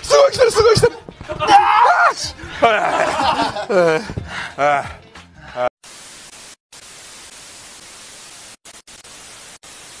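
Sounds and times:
tv static hiss: 5.8 - 10.0.

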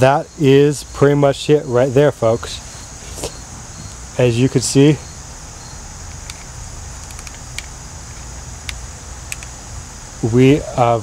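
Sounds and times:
high insect chorus: 0.0 - 11.0.

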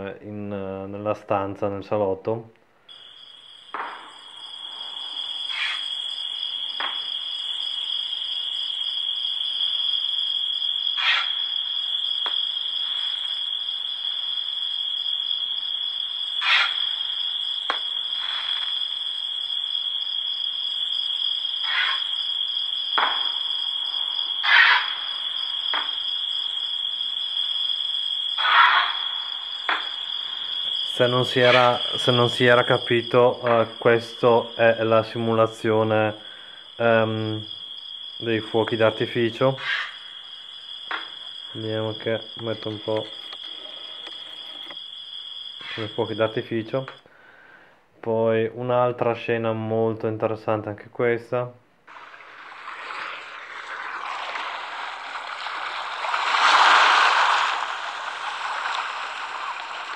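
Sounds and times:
firework pops and crackles: 3.7 - 4.1.

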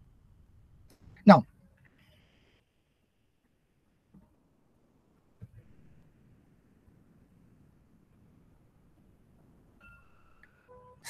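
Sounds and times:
faint steady tones: 0.0 - 11.0.

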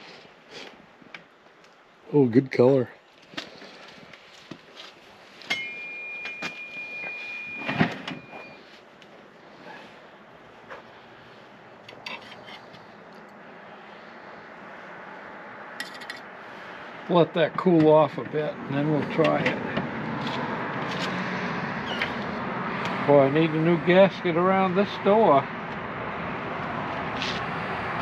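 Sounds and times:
metal spatula scraping wire racks: 11.9 - 12.7.

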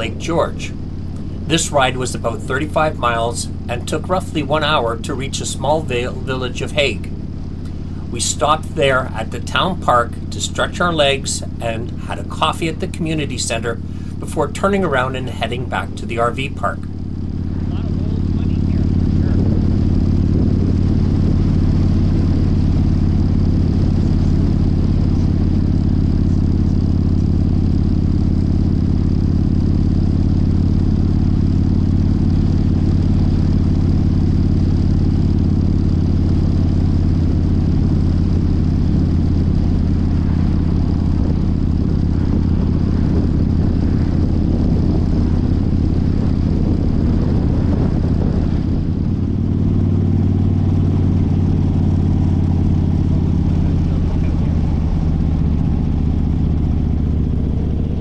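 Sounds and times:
motorcycle engine cruising: 0.0 - 58.0.

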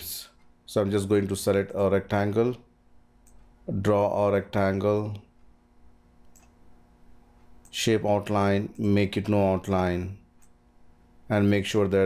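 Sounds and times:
low steady hum: 0.0 - 12.0
computer mouse click: 3.2 - 3.5, 6.2 - 6.6.

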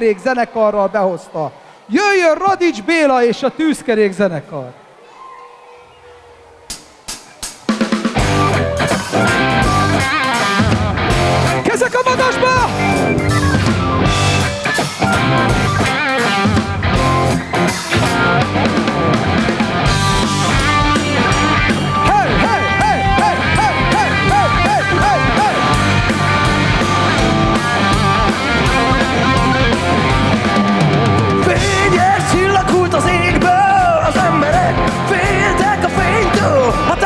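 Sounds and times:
blues rock band playing: 6.7 - 37.0
electric guitar bending notes: 8.1 - 37.0.

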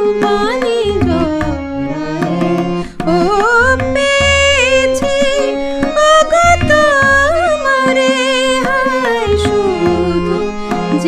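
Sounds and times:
tabla: 0.0 - 11.0
woman singing: 0.0 - 11.0.

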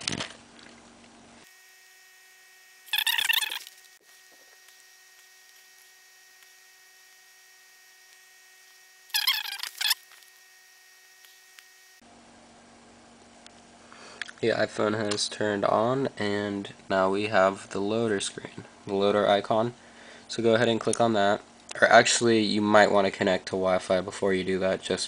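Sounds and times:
electrical hum: 0.0 - 25.0
high-pitched warbling burst: 2.9 - 3.7.

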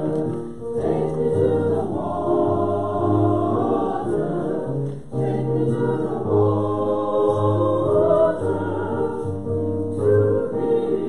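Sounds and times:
group singing a hymn: 0.0 - 11.0.

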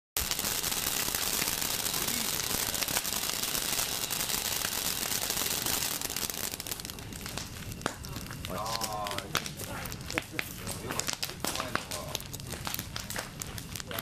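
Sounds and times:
bonfire crackling: 0.2 - 14.0
firework fountain hissing: 0.2 - 14.0.

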